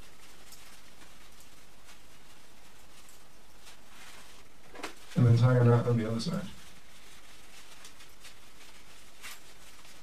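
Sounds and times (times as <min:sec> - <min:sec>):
cloth rustling: 0:00.0 - 0:10.0.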